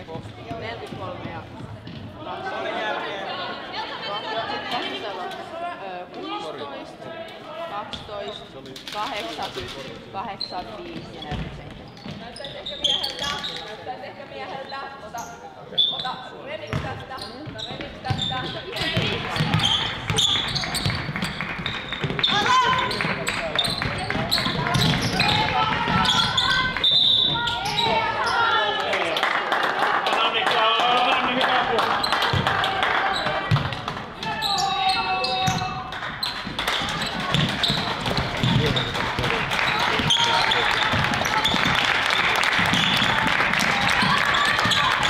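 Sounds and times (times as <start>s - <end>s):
basketball bouncing on wooden floor: 16.7s - 26.6s, 36.4s - 39.3s.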